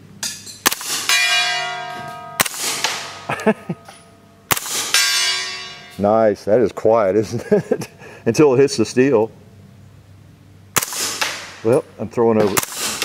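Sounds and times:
suppressed gunshots: 0.6s - 1.2s, 2.4s - 3.2s, 4.5s - 5.1s, 10.7s - 11.6s, 12.4s - 13.0s
steel gong ringing: 1.1s - 4.4s, 5.0s - 6.1s.

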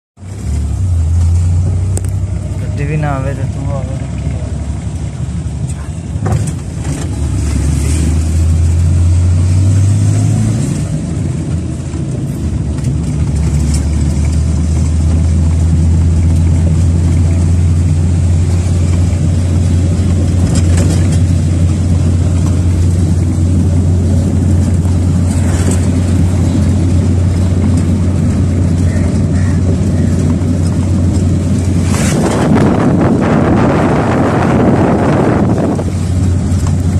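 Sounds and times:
vehicle engine droning: 0.2s - 36.9s
wind noise rushing: 31.4s - 36.6s.

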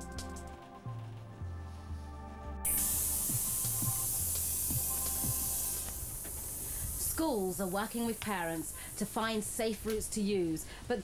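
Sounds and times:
background music: 0.0s - 6.3s
compressed air hissing: 2.7s - 9.7s.

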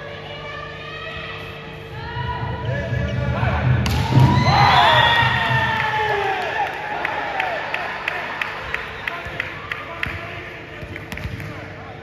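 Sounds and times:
crowd shouting and cheering: 2.3s - 10.4s.

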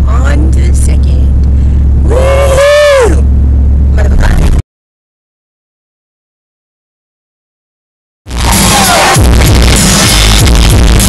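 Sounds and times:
car interior rumble: 0.0s - 4.6s
woman's vocal woo: 2.0s - 3.3s.

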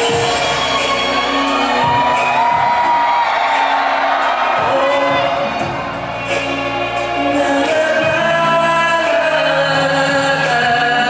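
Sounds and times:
audience cheering and whooping: 0.0s - 9.6s
live concert music: 0.0s - 11.0s.

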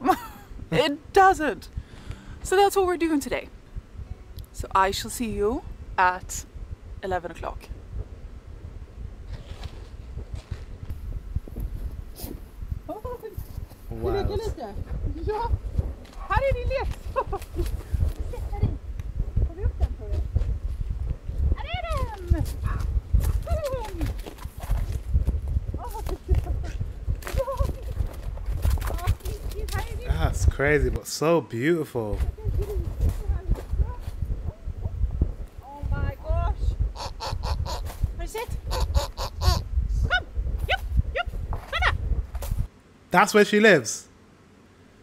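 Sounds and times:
low rumble: 0.0s - 31.0s, 32.2s - 42.7s
footsteps on snow: 9.2s - 12.6s.

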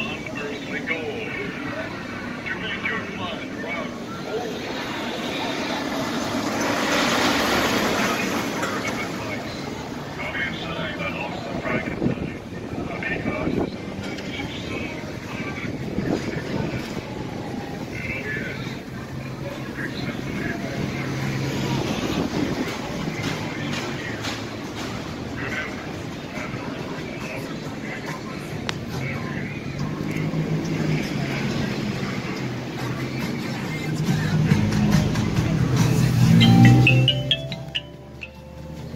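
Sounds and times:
traffic noise: 0.0s - 38.9s
voices of passers-by: 0.0s - 38.9s
car passing: 4.4s - 10.2s.

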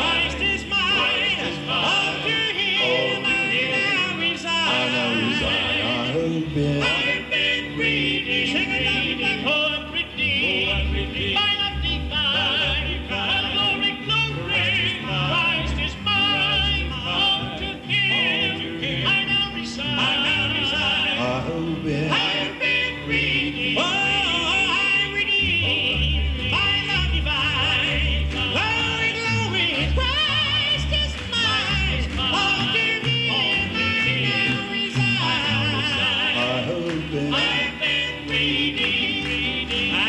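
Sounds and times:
instrumental accompaniment with bass: 0.0s - 40.0s
male vocal group singing harmony: 0.0s - 40.0s
low bass vocal part: 4.7s - 7.2s.

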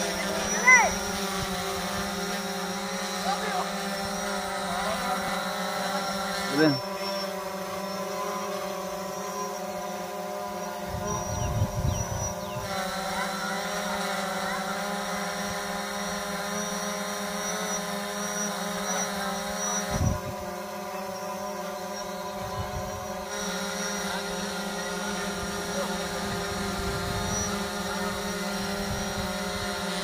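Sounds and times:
drone propellers humming: 0.0s - 30.0s.

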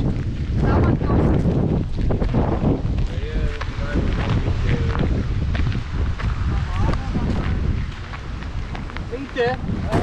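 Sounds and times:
footsteps on gravel: 0.0s - 10.0s
wind buffeting microphone: 0.0s - 10.0s.

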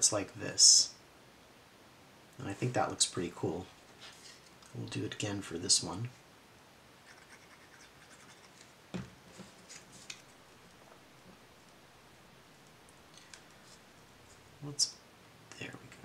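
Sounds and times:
faint paper rustles and clicks: 8.4s - 11.8s.

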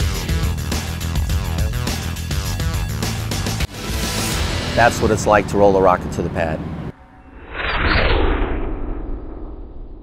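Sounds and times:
deep rumbling boom: 7.3s - 10.0s.

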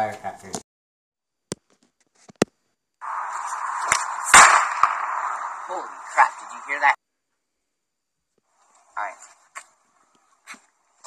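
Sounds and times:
firecracker rushing hiss: 3.0s - 6.9s
loud firecracker crack: 3.0s - 7.0s
person speaking: 5.6s - 7.0s.

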